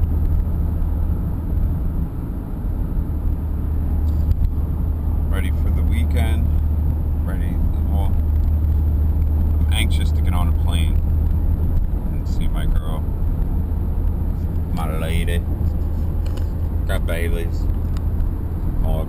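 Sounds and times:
car engine and tyres rumbling: 0.0s - 19.0s
person's voice: 14.7s - 15.4s, 16.9s - 17.6s, 18.8s - 19.0s.

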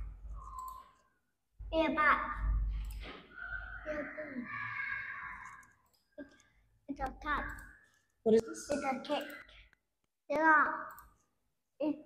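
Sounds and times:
computer mouse click: 0.4s - 1.1s, 5.4s - 7.8s, 10.8s - 11.2s
voice: 1.7s - 2.4s, 8.3s - 9.5s.

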